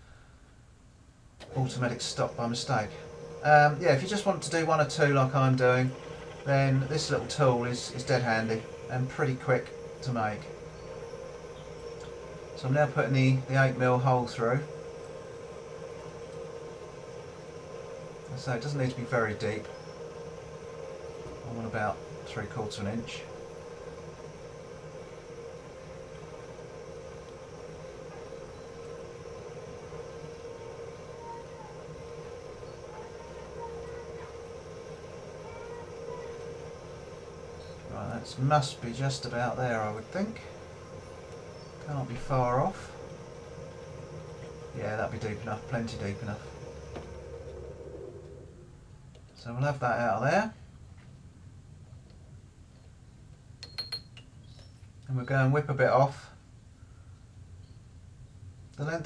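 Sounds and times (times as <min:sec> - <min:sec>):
lathe drilling metal: 0:01.4 - 0:48.8
light metallic clinks: 0:53.6 - 0:54.8.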